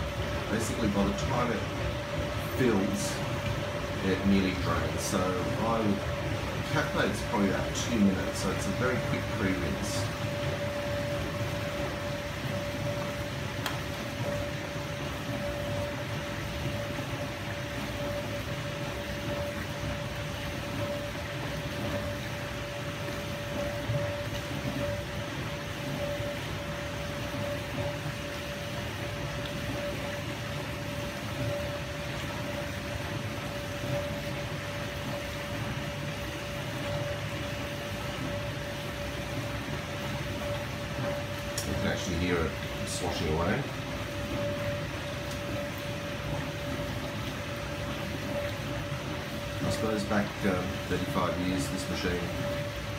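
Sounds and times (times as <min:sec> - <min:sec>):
dishwasher pump humming: 0:00.0 - 0:52.9.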